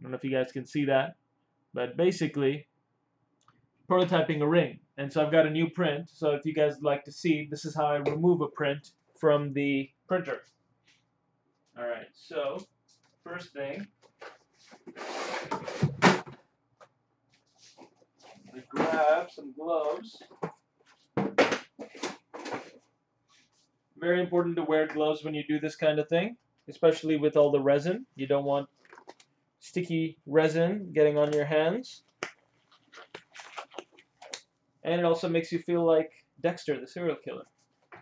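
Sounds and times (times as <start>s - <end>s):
gloves rustling: 10.4s - 23.8s, 28.6s - 29.4s, 32.0s - 34.6s, 37.3s - 38.0s.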